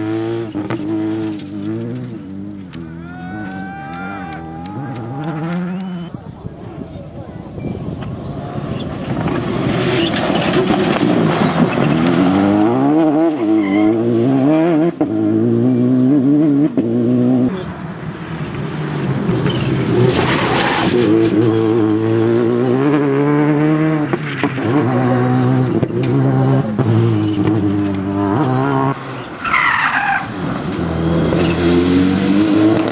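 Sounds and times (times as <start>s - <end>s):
rally car engine revving: 0.0s - 6.1s, 7.8s - 32.9s
tyres on gravel: 1.1s - 14.0s.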